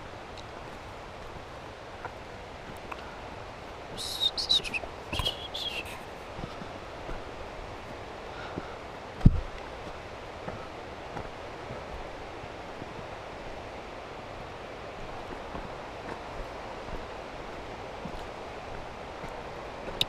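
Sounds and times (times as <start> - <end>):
rustling hiss of movement: 0.0 - 20.0
faint footfalls on dirt: 4.7 - 20.0.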